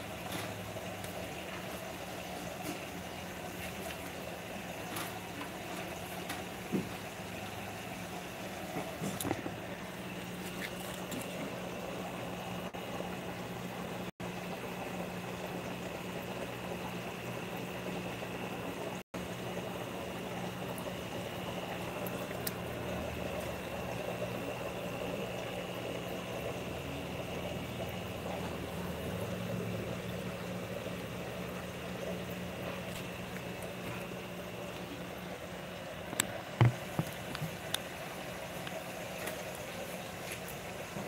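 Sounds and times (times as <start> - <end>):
aquarium pumps humming: 0.0 - 41.0
water bubbling and trickling: 0.0 - 41.0.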